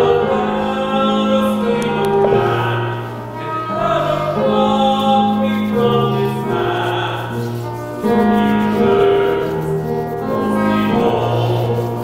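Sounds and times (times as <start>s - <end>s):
choir singing hymn: 0.0s - 12.0s.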